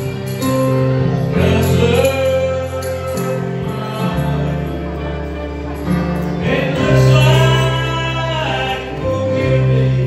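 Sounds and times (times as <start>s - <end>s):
gospel singing: 0.0s - 10.0s
steady bass: 0.0s - 10.0s.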